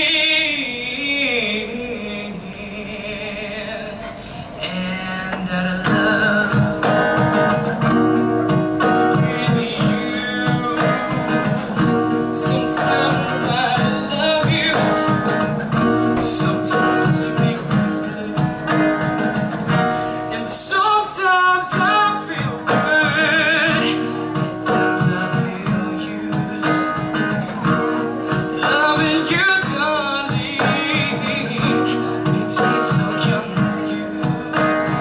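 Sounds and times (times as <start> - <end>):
person singing: 0.0 - 35.0
strummed acoustic guitar: 0.0 - 35.0.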